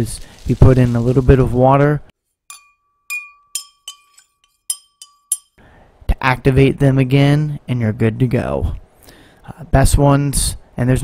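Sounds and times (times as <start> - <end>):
glass clinking: 2.5 - 5.6
thin ringing tone: 2.5 - 5.6.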